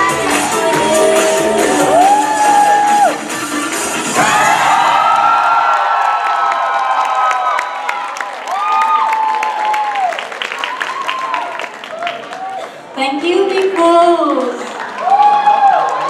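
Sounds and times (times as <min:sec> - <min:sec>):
crowd cheering: 0:00.0 - 0:12.9, 0:14.3 - 0:16.0
people clapping: 0:04.6 - 0:16.0.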